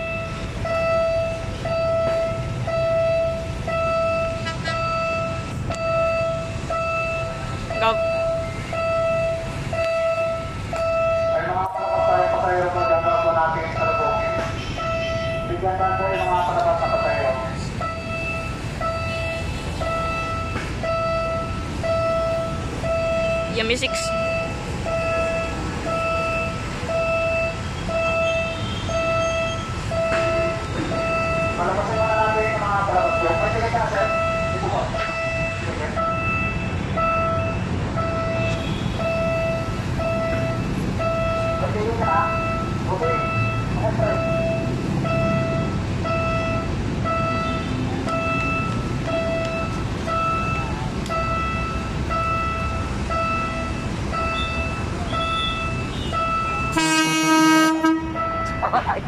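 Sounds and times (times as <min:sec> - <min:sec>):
diesel train rumble: 0:00.0 - 0:59.0
people talking: 0:07.8 - 0:08.0, 0:11.4 - 0:14.4, 0:15.5 - 0:17.5, 0:23.5 - 0:24.1, 0:31.6 - 0:36.1, 0:41.6 - 0:44.4, 0:58.6 - 0:59.0
pulsing beep: 0:12.8 - 0:56.8
train horn blast: 0:55.3 - 0:58.4.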